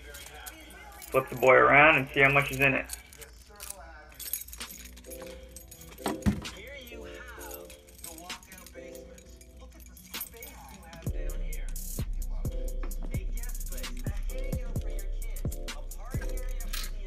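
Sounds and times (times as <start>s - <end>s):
keys jangling against metal cabinet: 0.0s - 17.0s
quiet background music: 0.0s - 17.0s
music with deep bass: 11.1s - 17.0s.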